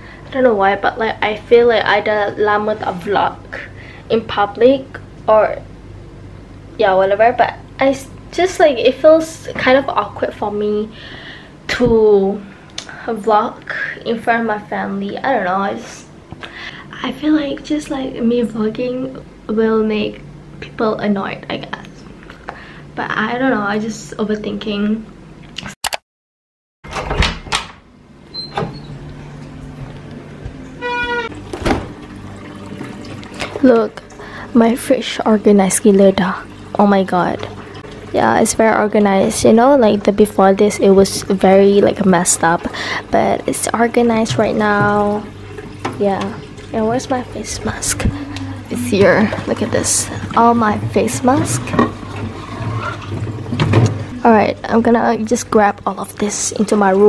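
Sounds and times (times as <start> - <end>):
steady low hum: 0.0 - 25.5, 27.8 - 57.0
cardboard box scraping on plastic shelf: 50.8 - 54.1.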